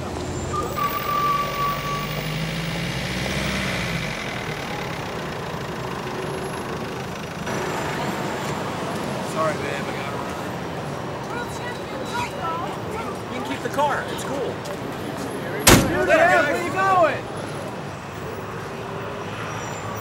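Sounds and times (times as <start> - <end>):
street traffic noise: 0.0 - 20.0
car driving past on wet street: 0.1 - 9.2.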